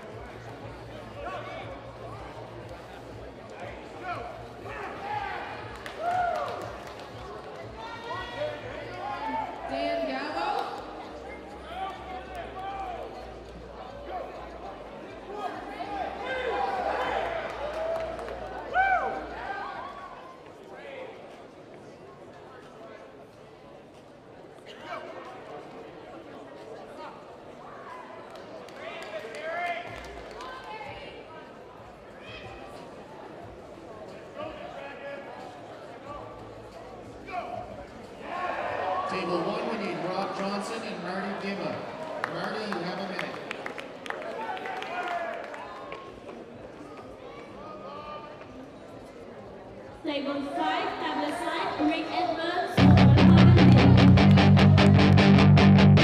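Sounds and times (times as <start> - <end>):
people talking and calling out: 46.1 - 56.0.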